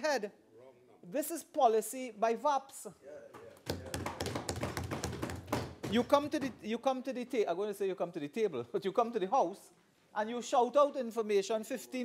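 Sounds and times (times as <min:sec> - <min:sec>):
people thumping wooden desks: 0:03.4 - 0:06.8.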